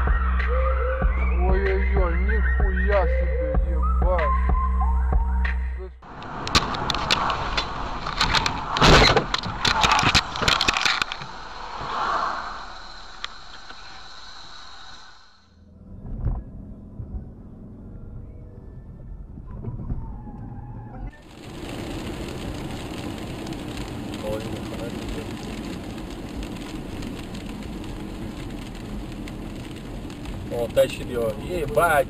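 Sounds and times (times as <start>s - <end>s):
tyre and road noise on wet road: 6.0s - 16.6s, 21.1s - 32.0s.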